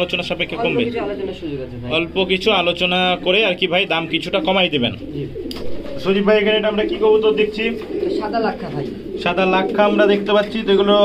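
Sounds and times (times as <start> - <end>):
pigeons cooing: 0.0 - 11.0
man's voice: 5.9 - 7.9.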